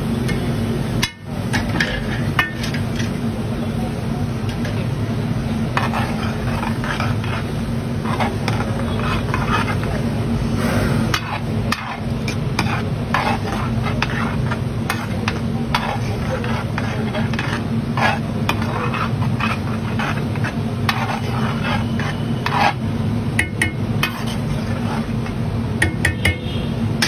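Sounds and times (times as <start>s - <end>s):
metal utensils scraping griddle: 1.0s - 3.2s, 5.6s - 10.2s, 11.1s - 25.4s.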